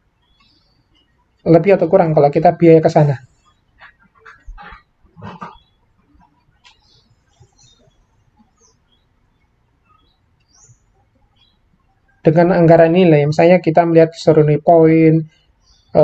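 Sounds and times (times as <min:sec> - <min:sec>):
man speaking: 0:01.4 - 0:03.4, 0:12.2 - 0:15.3.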